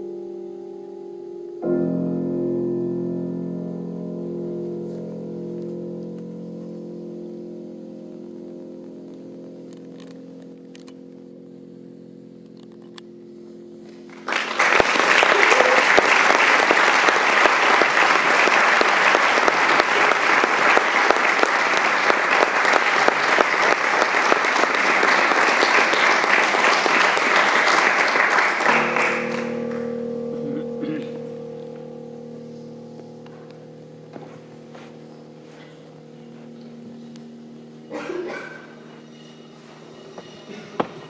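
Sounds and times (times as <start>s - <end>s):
held low chord: 0.0s - 41.0s
audience applause: 14.1s - 29.9s.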